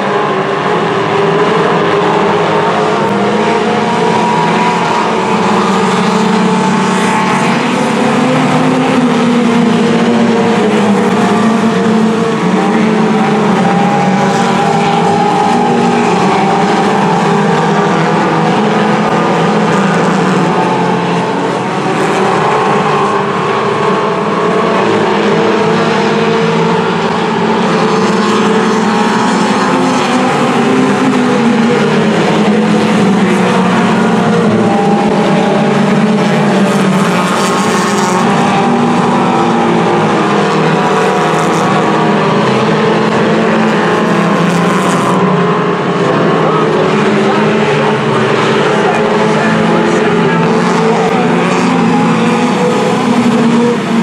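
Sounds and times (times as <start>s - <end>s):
race car engines passing: 0.0s - 54.0s.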